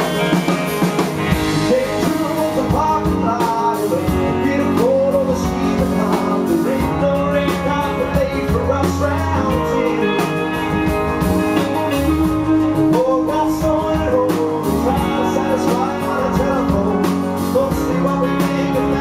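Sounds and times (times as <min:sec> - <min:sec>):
bending lead guitar melody: 0:00.0 - 0:19.0
live rock band playing: 0:00.0 - 0:19.0.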